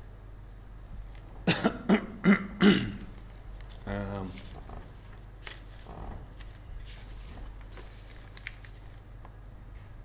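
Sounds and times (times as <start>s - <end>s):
man coughing: 1.4s - 3.1s.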